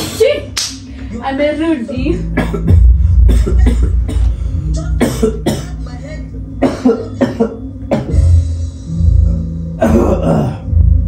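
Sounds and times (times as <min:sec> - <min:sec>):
television sound: 0:00.0 - 0:08.9
man coughing: 0:02.3 - 0:04.4, 0:05.0 - 0:05.9, 0:06.6 - 0:08.4, 0:09.8 - 0:10.8.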